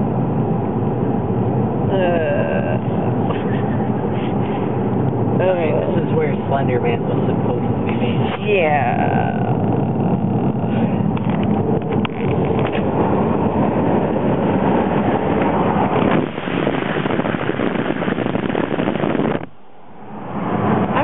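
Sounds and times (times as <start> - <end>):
car cabin road and engine noise: 0.0 - 21.0.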